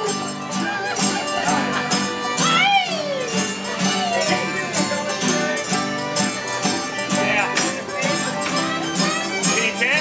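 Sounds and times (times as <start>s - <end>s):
acoustic guitars: 0.0s - 10.0s
banjo: 0.0s - 10.0s
button accordion: 0.0s - 10.0s
fiddle: 0.0s - 10.0s.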